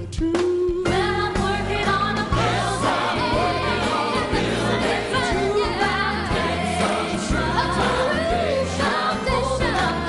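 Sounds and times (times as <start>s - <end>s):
band with held bass notes: 0.8s - 10.0s
choir singing gospel: 0.9s - 10.0s.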